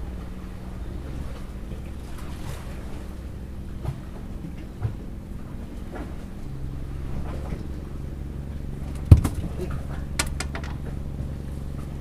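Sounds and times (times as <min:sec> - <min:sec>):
boat engine humming: 0:00.0 - 0:12.0.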